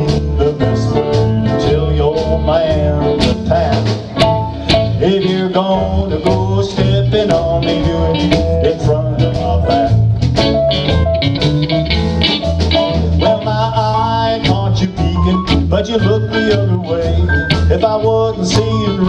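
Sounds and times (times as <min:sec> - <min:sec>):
person singing: 0:00.0 - 0:10.0, 0:13.0 - 0:19.0
bass line: 0:00.0 - 0:19.0
drums keeping a steady beat: 0:00.0 - 0:19.0
electric guitar: 0:00.0 - 0:19.0.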